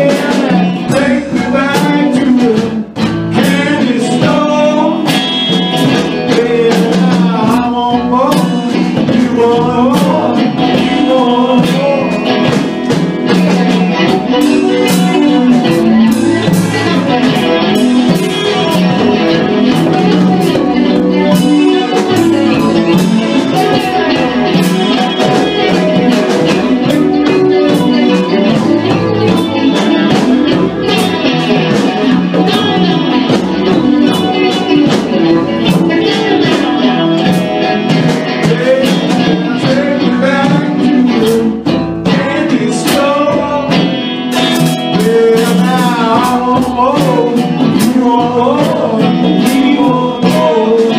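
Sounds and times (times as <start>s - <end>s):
drum kit steady beat: 0.0s - 50.9s
electric guitar: 0.0s - 50.9s.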